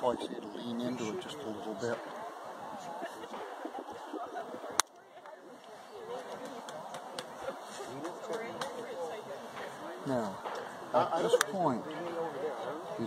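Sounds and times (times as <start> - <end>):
faint background voices: 0.0 - 13.0.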